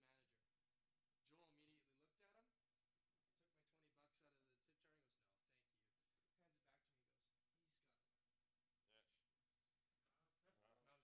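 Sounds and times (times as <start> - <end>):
faint voice: 10.0 - 11.0.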